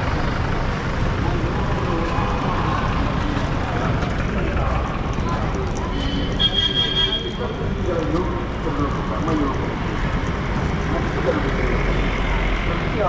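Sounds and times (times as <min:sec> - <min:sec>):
indistinct voices: 0:00.0 - 0:13.0
road traffic: 0:00.0 - 0:13.0
vehicle engine: 0:00.0 - 0:13.0.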